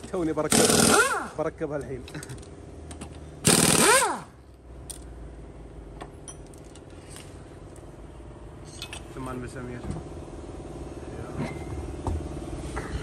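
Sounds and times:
impact wrench burst: 0.5s - 1.4s, 3.4s - 4.4s.

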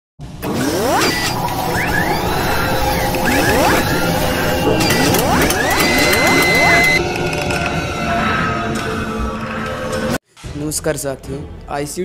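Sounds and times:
mechanical whirring and ratcheting: 0.4s - 7.8s.

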